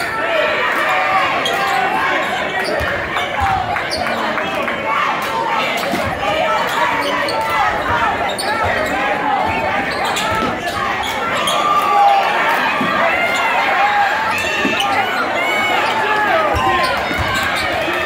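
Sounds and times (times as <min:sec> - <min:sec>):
crowd and player voices: 0:00.0 - 0:18.0
sneakers squeaking: 0:00.8 - 0:04.5, 0:05.6 - 0:18.0
basketball bouncing: 0:08.6 - 0:10.8, 0:16.5 - 0:17.7.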